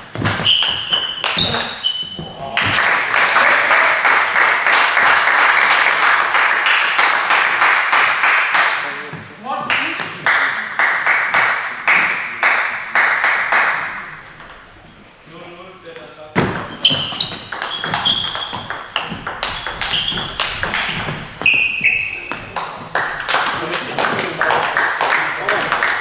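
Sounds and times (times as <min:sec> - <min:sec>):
crowd cheering: 0:02.4 - 0:08.2
hand clapping: 0:02.6 - 0:08.8, 0:09.7 - 0:14.0, 0:22.4 - 0:26.0.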